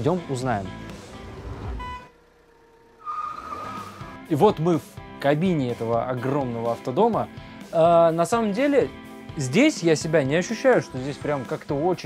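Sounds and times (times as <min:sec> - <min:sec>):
tyre squeal: 0:03.0 - 0:04.2.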